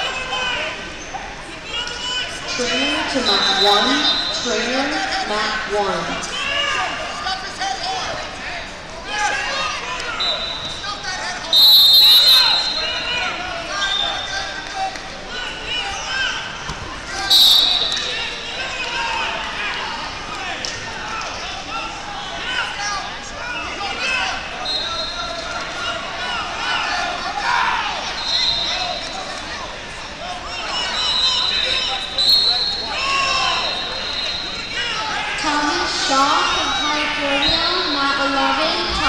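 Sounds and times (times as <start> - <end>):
din of voices in a hall: 0.0 - 39.0
referee whistles blowing: 3.1 - 4.7, 10.1 - 10.8, 11.4 - 14.5, 17.2 - 18.2, 24.6 - 25.4, 28.0 - 29.2, 30.7 - 35.2.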